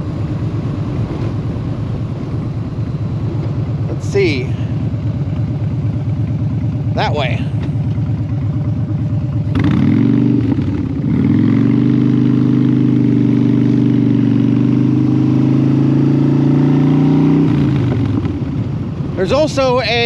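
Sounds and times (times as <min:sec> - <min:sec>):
motorcycle engine pulling away: 0:05.0 - 0:18.8.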